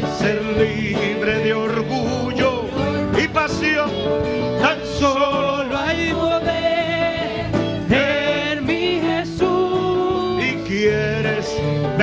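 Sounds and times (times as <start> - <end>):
worship singing with instruments: 0.0 - 12.0.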